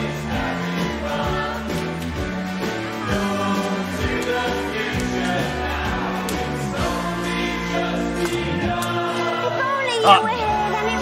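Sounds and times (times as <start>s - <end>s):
group of voices singing: 0.0s - 11.0s
band playing: 8.0s - 11.0s.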